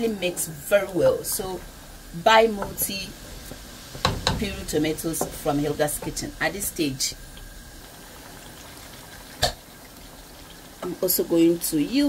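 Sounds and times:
stew bubbling in a pot: 0.0 - 12.0.

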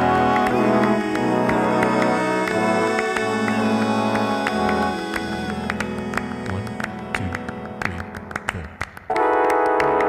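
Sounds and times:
looped trombone music: 0.0 - 5.1.

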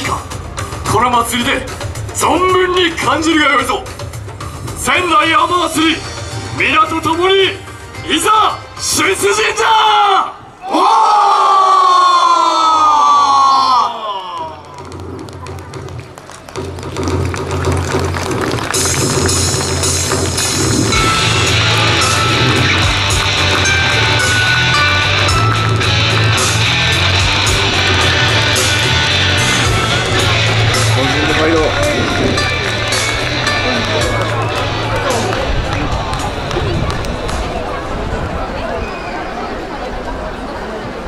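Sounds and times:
long falling shout: 9.6 - 14.7
music with deep beat: 16.8 - 36.7.

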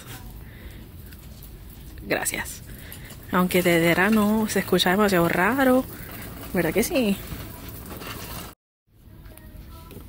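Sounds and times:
store ambience: 0.0 - 10.0.

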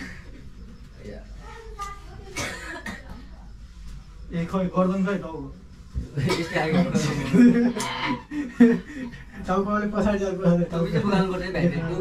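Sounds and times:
person coughing: 2.4 - 3.1.

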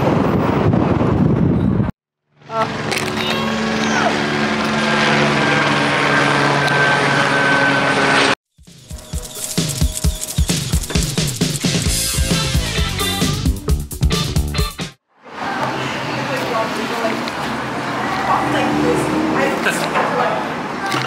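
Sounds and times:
helicopter flying overhead: 0.0 - 12.0
music: 8.6 - 15.0.

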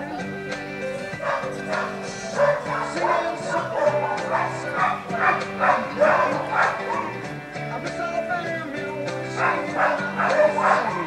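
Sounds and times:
background music with held notes: 0.0 - 11.0
dog barking: 1.2 - 7.2, 9.4 - 11.0.

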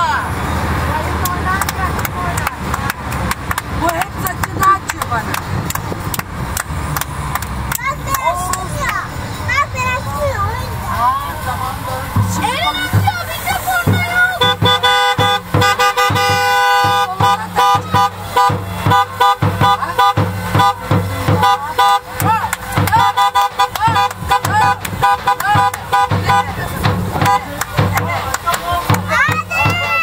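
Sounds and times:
car horns honking: 0.0 - 30.0
festive music with drum beat: 0.0 - 30.0.

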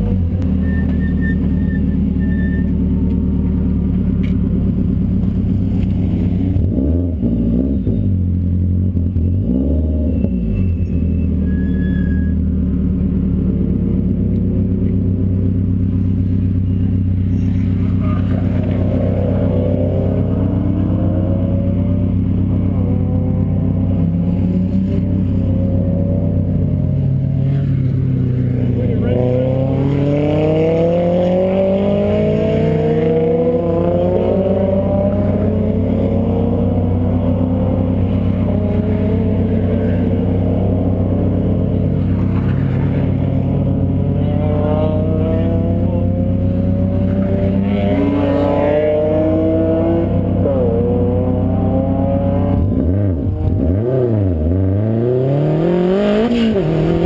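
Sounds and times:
car engine idling: 0.0 - 9.4, 10.6 - 54.6
car engine accelerating: 0.0 - 57.0.

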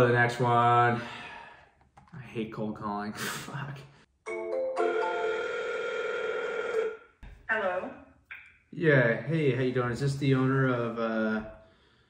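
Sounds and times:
telephone ringback tone: 4.3 - 7.0.

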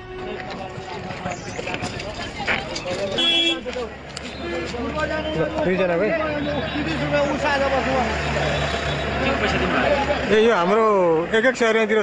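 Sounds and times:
vehicle engine humming: 0.0 - 12.0
men talking: 0.2 - 12.0.

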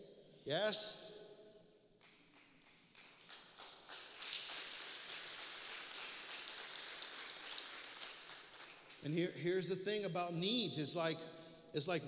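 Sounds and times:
crowd applauding: 2.0 - 9.2.

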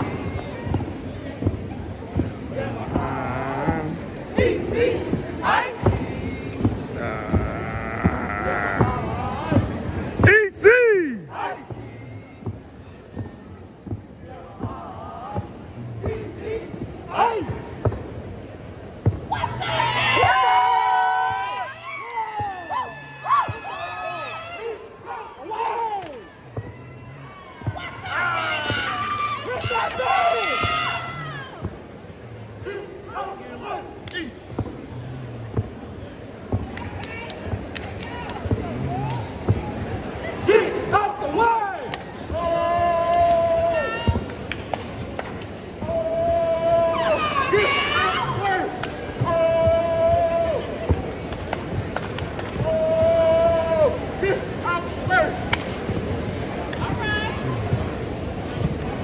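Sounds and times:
crowd noise: 0.0 - 59.0
people shouting: 2.5 - 13.6, 14.2 - 17.8, 19.3 - 31.7, 40.2 - 44.3, 45.8 - 51.0, 52.5 - 55.4
hands clapping: 26.0 - 26.2, 36.7 - 39.4, 41.8 - 42.2, 43.0 - 43.5, 44.2 - 45.6, 48.8 - 49.1, 50.9 - 52.7, 55.5 - 55.8, 56.7 - 57.0.

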